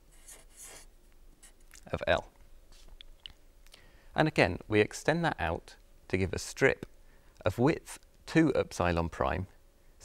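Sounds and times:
marker scratching on paper: 0.0s - 1.6s
man speaking: 1.8s - 2.3s, 4.2s - 9.5s.

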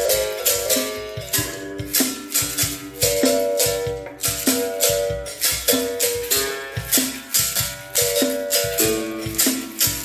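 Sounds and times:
basket rattle shaking: 0.0s - 10.0s.

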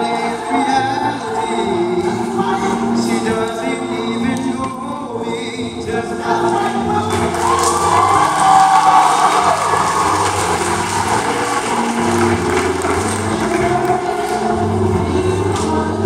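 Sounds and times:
men's chorus singing in harmony: 0.0s - 16.0s.

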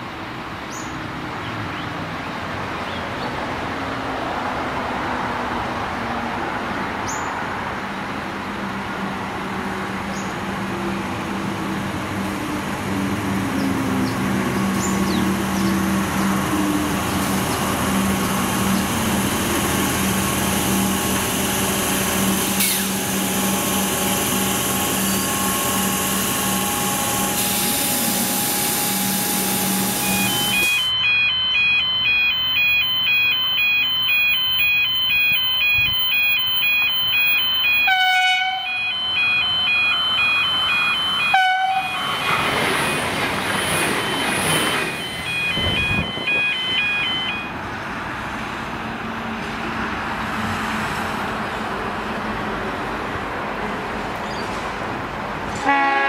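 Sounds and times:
railcar passing: 0.0s - 56.0s
electric train motor hum: 11.5s - 34.6s
two-tone electronic warning signal: 22.6s - 47.6s
train horn blasts: 37.8s - 38.8s, 41.3s - 42.2s, 55.6s - 56.0s.

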